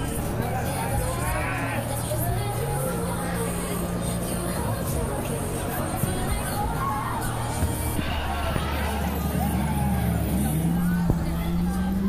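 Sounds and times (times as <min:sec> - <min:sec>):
fairground din: 0:00.0 - 0:12.0
ride machinery humming: 0:00.0 - 0:12.0.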